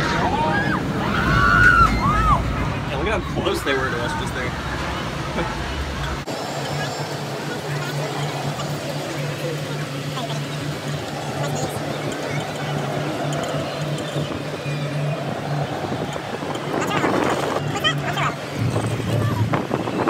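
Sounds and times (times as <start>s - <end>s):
faint voices: 0.0s - 20.0s.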